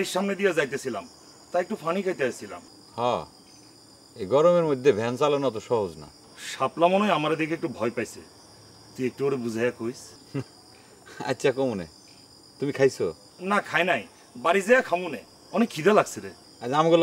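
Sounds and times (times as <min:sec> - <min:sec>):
men speaking: 0:00.0 - 0:03.4, 0:04.2 - 0:08.3, 0:08.9 - 0:12.0, 0:12.6 - 0:17.0
crickets chirring: 0:00.0 - 0:17.0.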